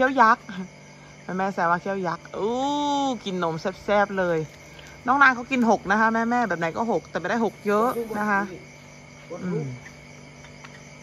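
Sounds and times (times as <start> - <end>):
woman speaking: 0.0 - 9.8
crickets chirping: 0.0 - 11.0.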